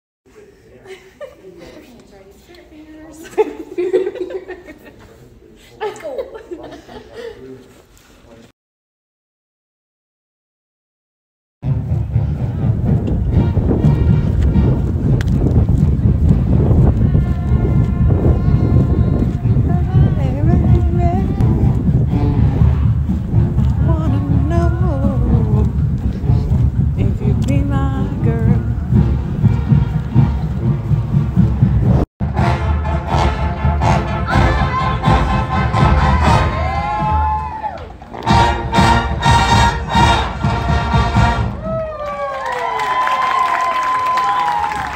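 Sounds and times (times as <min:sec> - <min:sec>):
marching band playing: 0:11.6 - 0:41.7
heavy drums: 0:11.6 - 0:42.0
wind buffeting microphone: 0:11.7 - 0:32.0
crowd shouting and cheering: 0:32.4 - 0:44.9.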